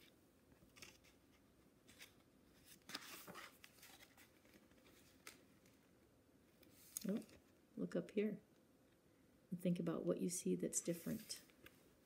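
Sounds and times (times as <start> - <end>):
book page turning: 0.5 - 5.8, 6.6 - 7.4.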